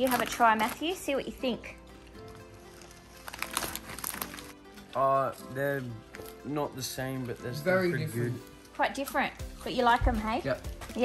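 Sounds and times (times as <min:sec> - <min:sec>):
snack bag crackling and crunching: 0:00.0 - 0:09.8
background music: 0:00.0 - 0:11.0.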